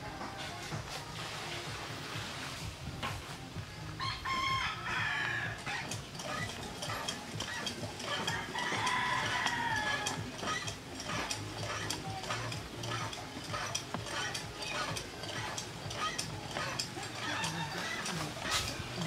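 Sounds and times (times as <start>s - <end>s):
rooster crowing: 4.0s - 11.8s, 16.6s - 18.8s.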